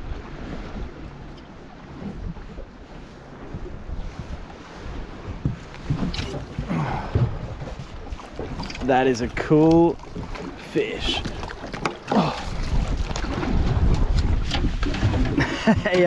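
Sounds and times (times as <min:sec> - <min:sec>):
water lapping against boat hull: 0:00.0 - 0:16.0
wind buffeting microphone: 0:00.0 - 0:16.0.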